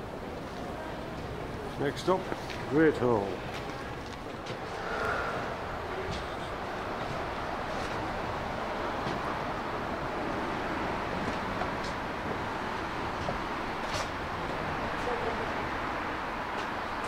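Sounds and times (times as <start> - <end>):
large hall ambience: 0.0 - 17.0.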